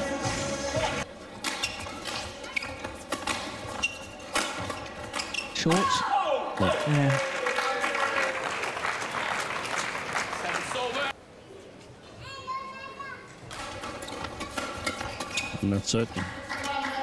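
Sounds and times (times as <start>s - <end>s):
crowd cheering and clapping: 6.5s - 11.1s.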